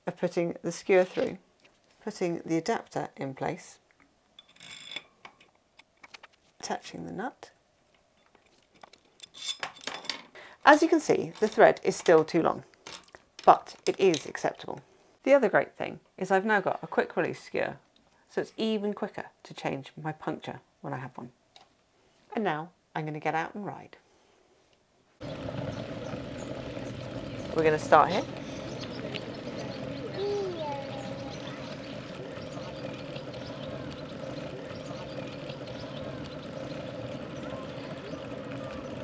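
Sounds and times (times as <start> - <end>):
bicycle tyre noise on pavement: 25.2 - 39.0.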